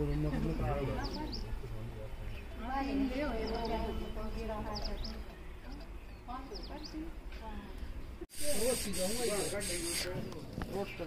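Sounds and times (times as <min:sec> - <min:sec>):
person speaking: 0:08.3 - 0:10.1
steady hiss: 0:08.3 - 0:10.2.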